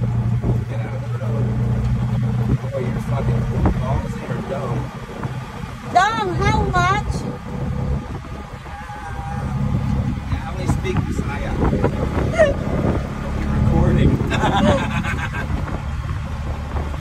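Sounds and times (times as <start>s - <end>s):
auto-rickshaw engine running: 0.0s - 17.0s
road and ride noise: 0.0s - 17.0s.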